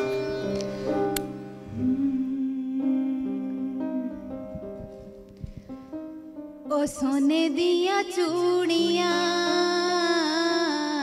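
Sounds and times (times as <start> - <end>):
keyboard playing held chords: 0.0 - 6.6.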